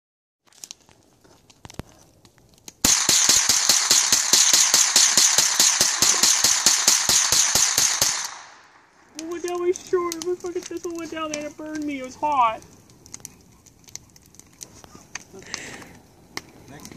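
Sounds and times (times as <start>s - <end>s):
firework hissing and crackling: 2.8s - 16.9s.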